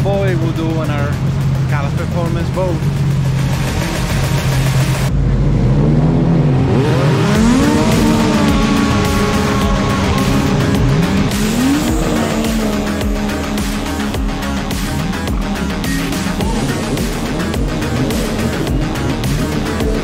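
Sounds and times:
jet ski engines revving: 0:00.0 - 0:20.0.

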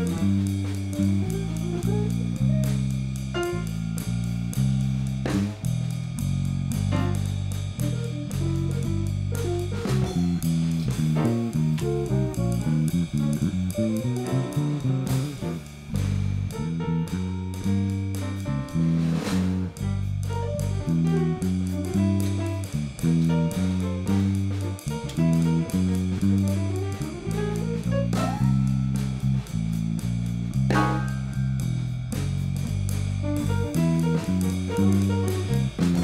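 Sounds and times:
drum kit: 0:00.0 - 0:36.0
electric bass notes: 0:00.0 - 0:36.0
jazz guitar: 0:00.0 - 0:36.0
piano: 0:00.0 - 0:36.0.

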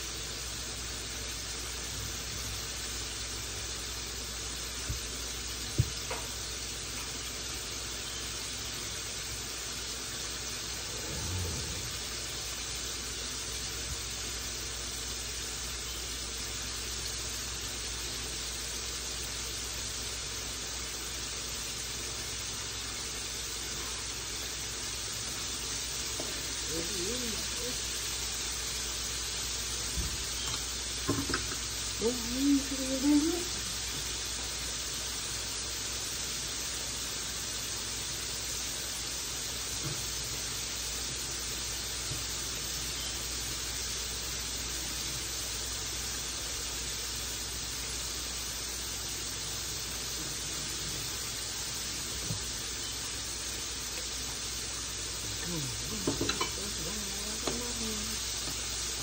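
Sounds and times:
chicken sizzling in oil: 0:00.0 - 0:59.0
person speaking: 0:26.6 - 0:27.8, 0:55.4 - 0:58.2.

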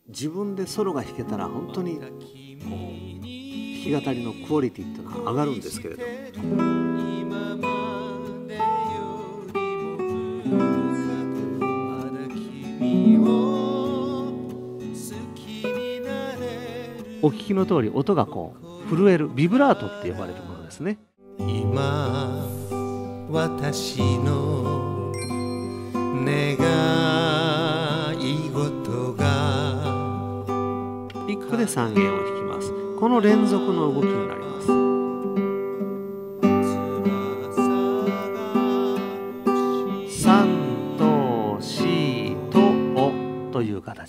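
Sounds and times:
classical guitar melody: 0:00.7 - 0:18.2, 0:21.2 - 0:43.6.

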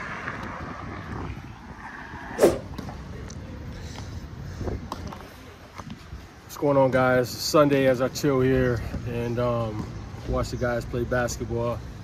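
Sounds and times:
short sharp bang: 0:02.4 - 0:02.8.

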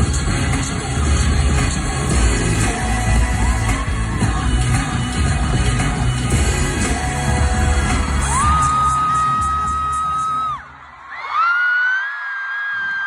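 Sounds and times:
pop music with heavy bass: 0:00.0 - 0:10.8.

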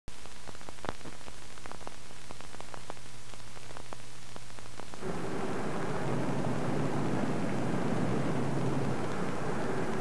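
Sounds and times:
film soundtrack hiss and crackles: 0:00.1 - 0:10.0
low rumbling noise: 0:05.0 - 0:10.0.

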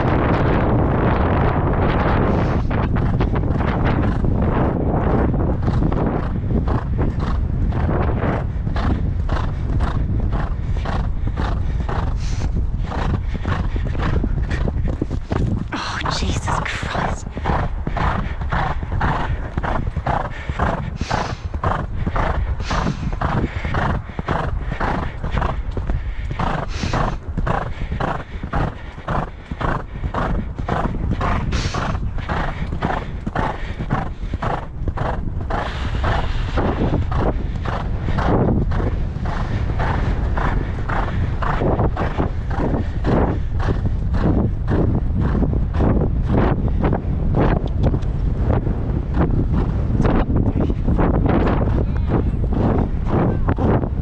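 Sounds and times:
horse hoofbeats on sand: 0:00.0 - 0:15.8, 0:16.9 - 0:54.0
wind on microphone: 0:00.0 - 0:54.0
horse breathing: 0:02.0 - 0:54.0.

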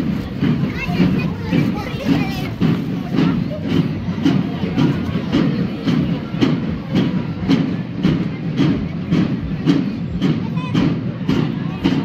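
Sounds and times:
marching drums beating: 0:00.0 - 0:12.0.

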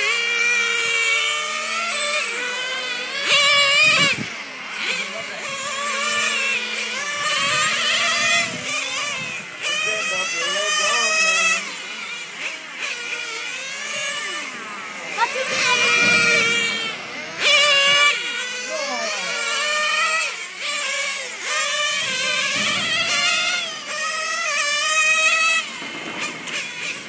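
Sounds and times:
model car engine whining: 0:00.0 - 0:27.0.

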